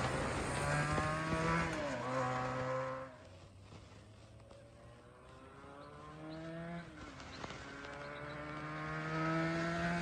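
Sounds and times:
motorcycle engine accelerating: 0.0 - 3.4, 4.4 - 10.0.

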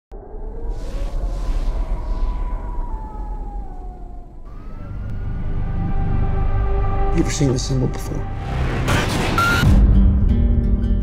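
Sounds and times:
slowly rising tone: 0.1 - 7.4
deep rumbling drone: 0.1 - 10.6.

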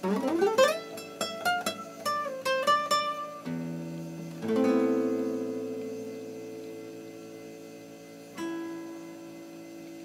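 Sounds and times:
classical guitar chord ringing: 0.0 - 10.0.

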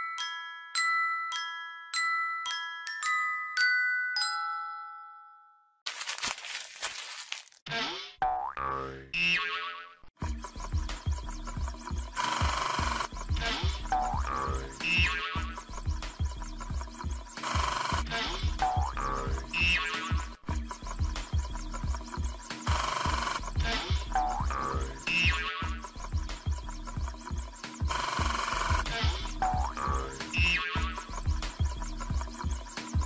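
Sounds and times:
bouncy cartoon music: 7.7 - 33.0
springy boing effects: 8.2 - 10.1.

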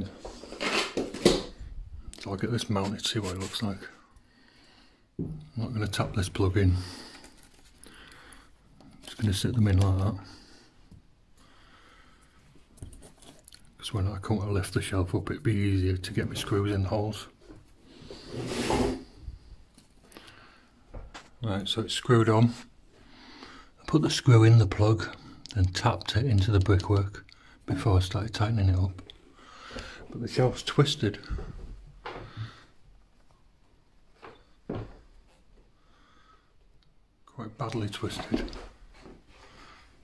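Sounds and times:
short scrape: 18.1 - 19.2.

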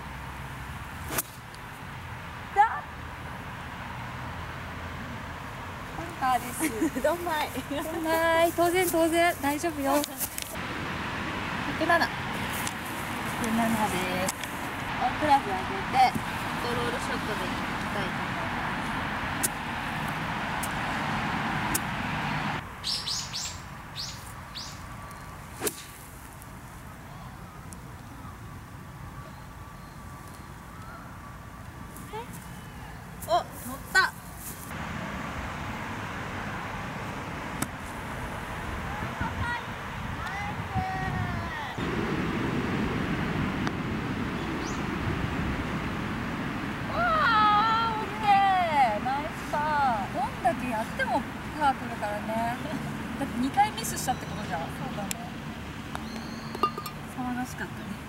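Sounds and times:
birds chirping: 11.5 - 25.6, 44.2 - 45.1, 49.9 - 58.0
wind on microphone: 38.5 - 48.2
golf club striking ball: 56.5 - 57.0.

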